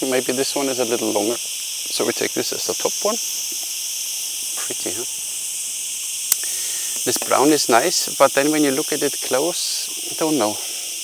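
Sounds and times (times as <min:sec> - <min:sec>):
cicadas buzzing: 0:00.0 - 0:11.0
sharp click: 0:06.3 - 0:07.3.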